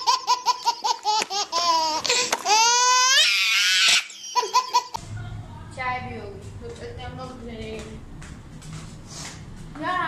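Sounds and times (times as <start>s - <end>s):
baby laughing: 0.0s - 5.0s.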